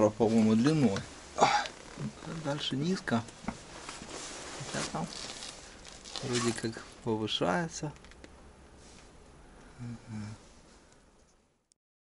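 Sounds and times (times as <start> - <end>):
rustling on dirt floor: 0.0 - 7.1.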